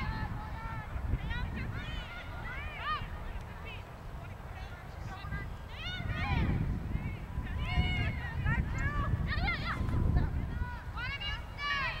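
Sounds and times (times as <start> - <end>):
people shouting and yelling: 0.0 - 12.0.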